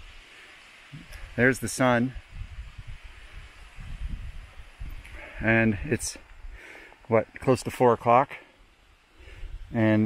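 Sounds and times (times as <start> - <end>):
wind buffeting microphone: 2.2 - 6.6.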